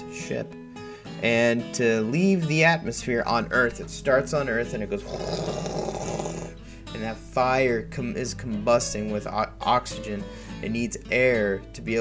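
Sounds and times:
man imitating rocket launch: 5.0s - 6.6s.

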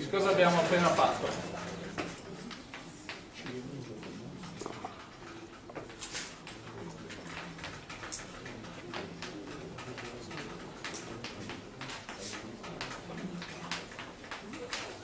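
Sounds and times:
chalk tapping and scratching: 0.0s - 15.0s.

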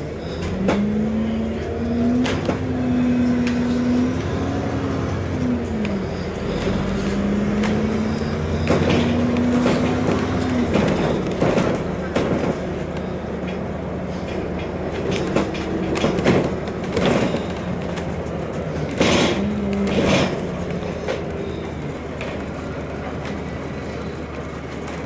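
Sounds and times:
bus drivetrain whine: 0.0s - 25.0s
low engine rumble: 0.0s - 25.0s
clicks and rattles in cabin: 8.6s - 21.4s.

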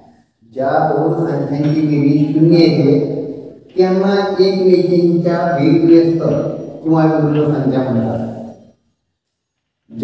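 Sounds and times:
man speaking: 0.4s - 8.4s.

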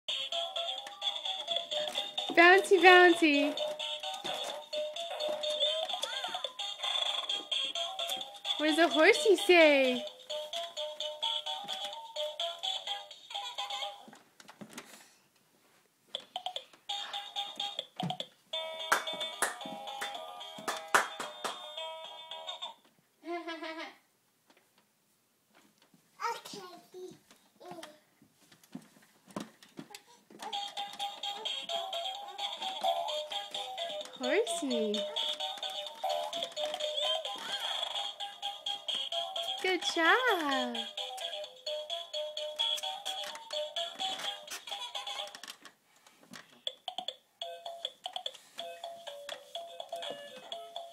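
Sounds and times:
clicks and knocks of rocking toy: 0.1s - 9.5s, 10.5s - 13.0s, 27.2s - 50.9s.

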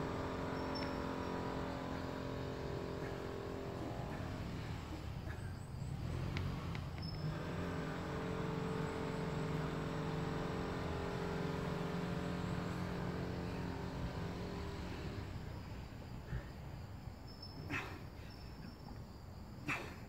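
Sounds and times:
low motor hum: 0.0s - 17.8s.

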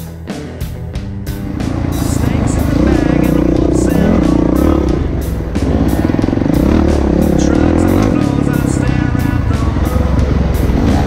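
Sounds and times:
rock music: 0.0s - 11.0s
motorcycle engine revving: 1.0s - 11.0s.

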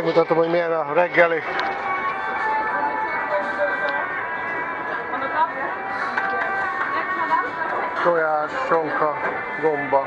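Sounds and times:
background music with held notes: 0.0s - 10.0s
hubbub of many voices: 0.0s - 10.0s.

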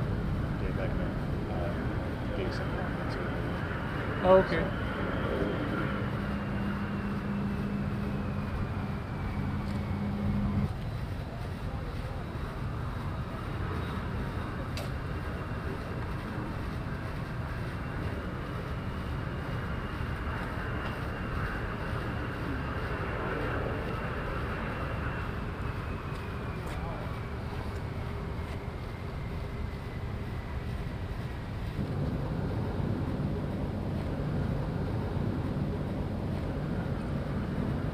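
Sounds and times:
jet engine rumble: 0.0s - 37.9s
low steady hum: 0.0s - 37.9s.

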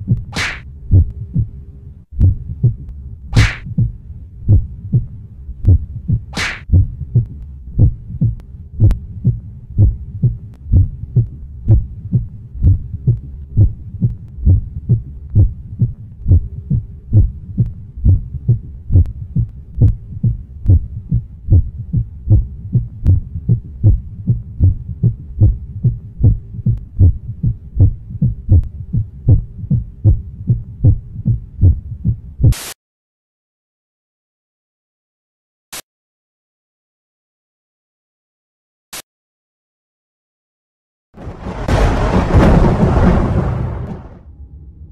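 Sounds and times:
faint steady hum: 0.0s - 32.5s
low heartbeat-like thumping: 0.0s - 32.6s.

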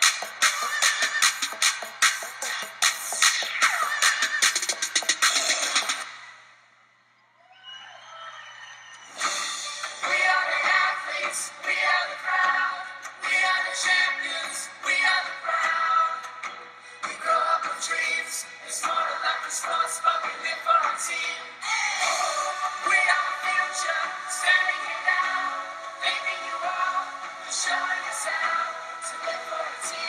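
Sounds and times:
upbeat pop backing track: 0.0s - 6.1s, 9.1s - 30.0s.

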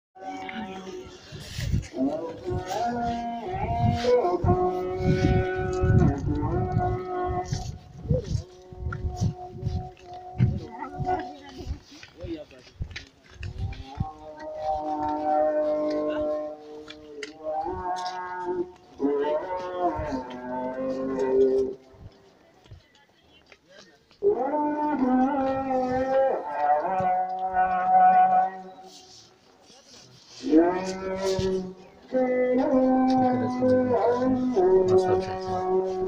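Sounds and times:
voices singing slow chant: 0.2s - 11.6s, 13.6s - 21.9s, 24.2s - 29.3s, 30.4s - 36.0s.

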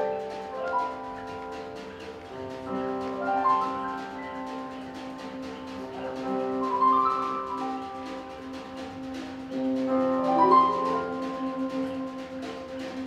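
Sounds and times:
horns holding sustained chords: 0.0s - 13.0s
jazz big band playing: 0.0s - 13.0s.

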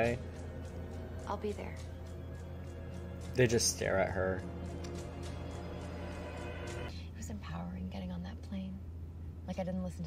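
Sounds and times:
steady low hum: 0.0s - 10.0s
woman speaking: 1.2s - 1.9s, 6.9s - 8.8s, 9.4s - 10.0s.

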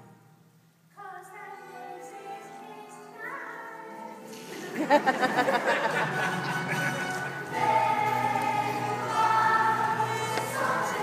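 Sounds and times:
musical accompaniment: 1.1s - 11.0s
group of voices singing: 7.0s - 11.0s.

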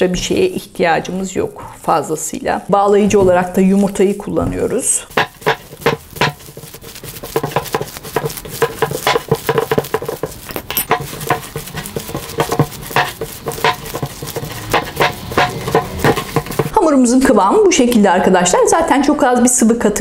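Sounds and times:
hands kneading oily dough: 0.1s - 16.8s.

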